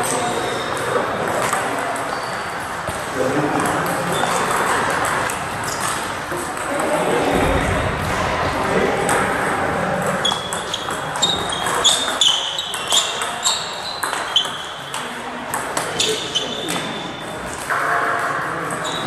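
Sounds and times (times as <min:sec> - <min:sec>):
table tennis balls clicking: 0:00.0 - 0:07.0, 0:09.0 - 0:16.9
murmur of voices: 0:00.0 - 0:19.0.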